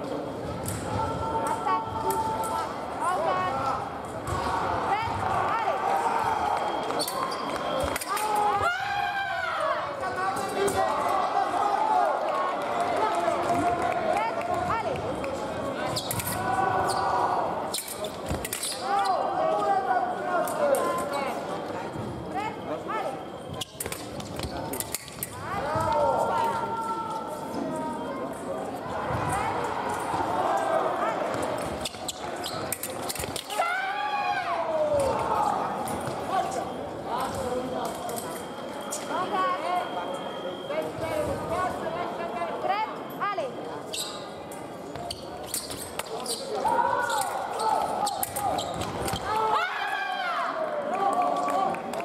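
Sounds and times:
fencing blades clicking: 17.7 - 18.8, 23.7 - 25.4, 31.8 - 33.6
shoes squeaking on floor: 31.6 - 33.4, 43.9 - 49.4.

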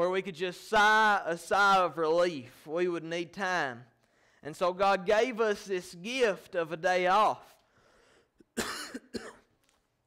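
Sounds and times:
man coughing: 8.4 - 9.6.

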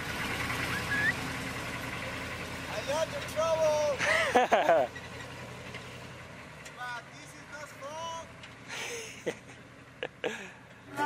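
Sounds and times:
truck engine driving away: 0.0 - 11.0
voices calling out: 0.6 - 2.0, 2.6 - 5.3, 6.6 - 11.0.

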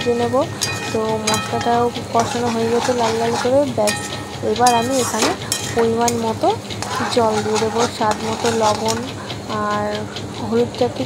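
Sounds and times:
frying sizzle: 0.0 - 9.8
metal spatula scraping a pan: 0.0 - 9.9.

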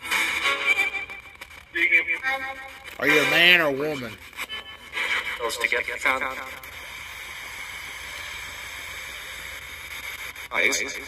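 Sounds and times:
radio static hiss: 0.0 - 11.0.

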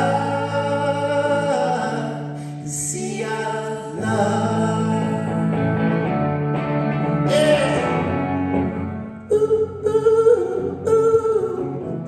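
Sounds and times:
acoustic guitar: 0.0 - 12.0.

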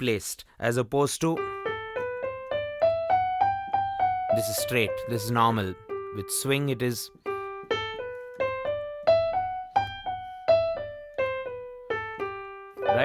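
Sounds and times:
digital piano playing a scale: 1.4 - 13.0.

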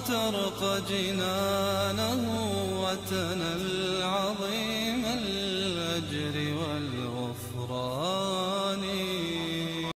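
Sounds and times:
devotional vocal chanting: 0.0 - 9.9.

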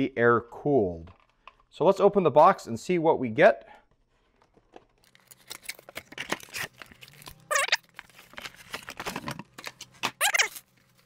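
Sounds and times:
cardboard box handling noises: 4.2 - 11.0
short high squeaks: 7.5 - 7.8, 10.2 - 10.6.

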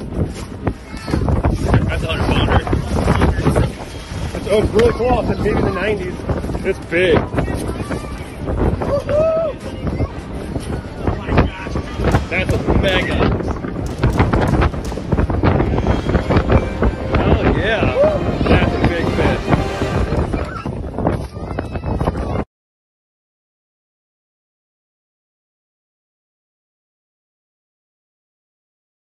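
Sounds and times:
heavy low rumble: 0.0 - 21.7
wind buffeting microphone: 0.0 - 22.5.

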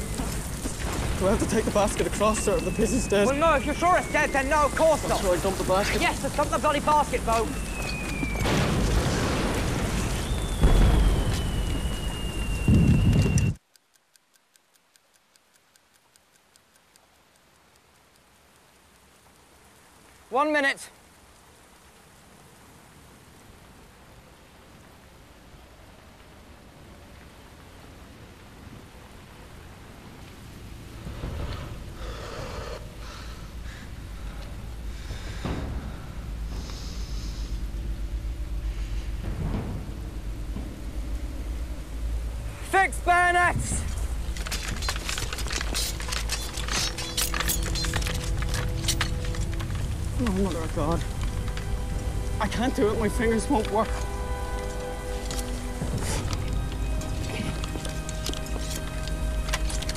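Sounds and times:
low rumble: 0.0 - 13.6, 32.8 - 59.9
rain falling: 0.0 - 59.9
metallic clicks of bayonets: 43.9 - 52.3, 53.6 - 59.9.

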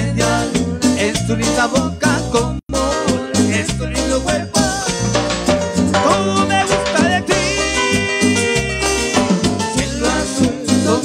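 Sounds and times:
live latin dance band: 0.0 - 11.0
pulsing bass line: 0.0 - 11.0.

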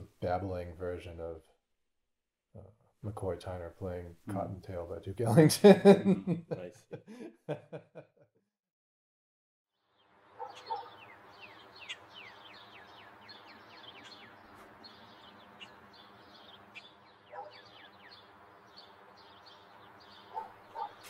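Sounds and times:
birds chirping: 9.9 - 21.0
short lower bird calls: 10.4 - 21.0.

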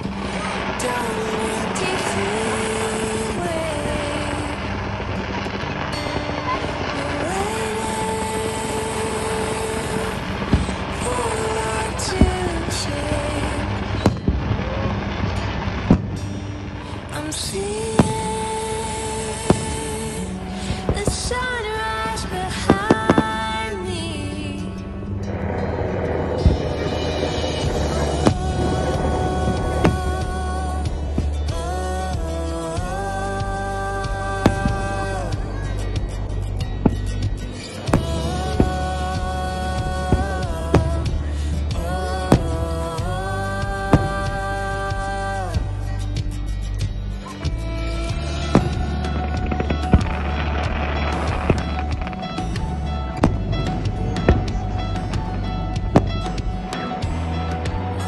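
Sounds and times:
fireworks launching and bursting: 0.0 - 45.6, 47.2 - 58.0
background music with held tones: 0.0 - 58.0
deep firework boom: 25.0 - 31.6, 48.2 - 57.8.

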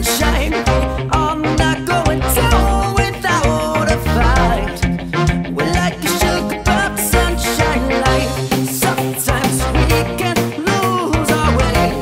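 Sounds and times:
instrumental pop music: 0.0 - 12.0.

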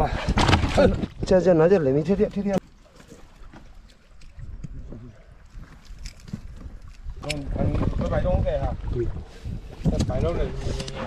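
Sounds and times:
water lapping at boat: 2.0 - 11.0
wind rumbling on microphone: 4.2 - 11.0.

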